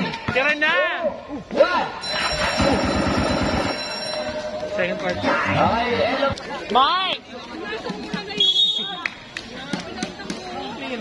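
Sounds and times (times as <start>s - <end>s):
ringing bell-like sound with rattle: 2.0s - 5.2s.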